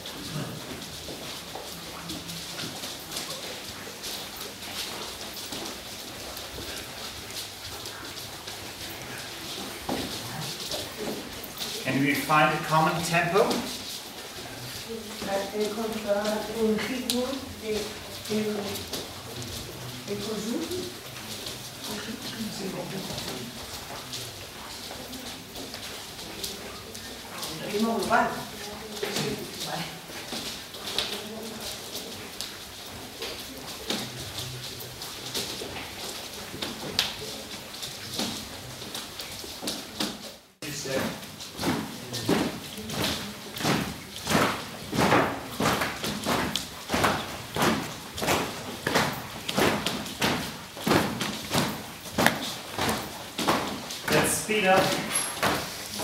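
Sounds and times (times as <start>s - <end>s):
footsteps on wooden floor: 0.0s - 56.0s.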